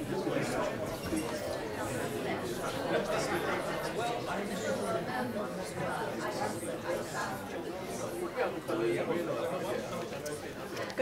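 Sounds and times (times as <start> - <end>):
chatter of many people: 0.0 - 11.0.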